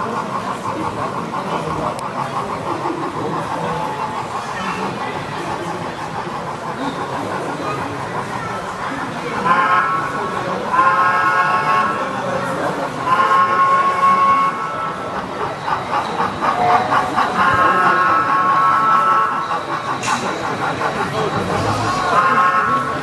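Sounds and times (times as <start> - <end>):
model steam locomotive whistle: 9.3 - 15.5, 16.4 - 19.9, 21.4 - 23.0.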